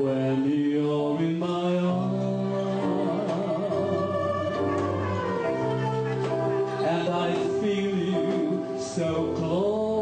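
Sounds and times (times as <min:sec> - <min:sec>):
live band playing slow ballad: 0:01.3 - 0:10.0.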